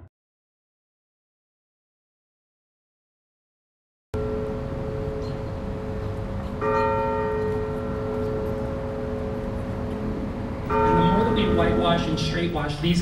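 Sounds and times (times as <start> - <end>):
large bell tolling: 4.2 - 13.0.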